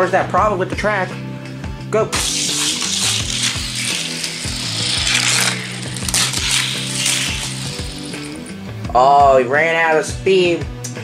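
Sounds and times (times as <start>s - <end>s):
background music: 0.0s - 11.0s
toy car rolling on plastic track: 2.2s - 8.6s.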